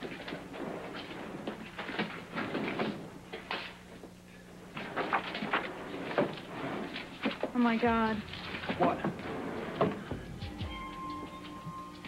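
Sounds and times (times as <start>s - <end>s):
faint steady hum: 0.0s - 12.0s
knocks scrapes and clatters: 4.7s - 7.6s, 8.3s - 10.4s.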